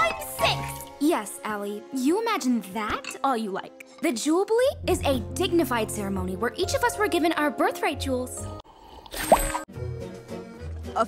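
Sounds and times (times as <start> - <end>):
soft background music: 0.0 - 8.6, 9.4 - 11.0
cartoon sip with rising pitch: 8.6 - 9.6.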